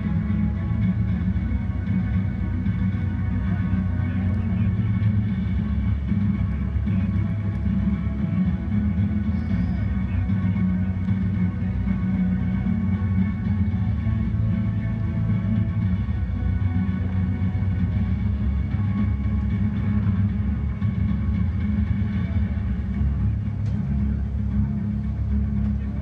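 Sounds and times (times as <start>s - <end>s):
distant music over loudspeakers: 0.0s - 26.0s
steady low rumble: 0.0s - 26.0s.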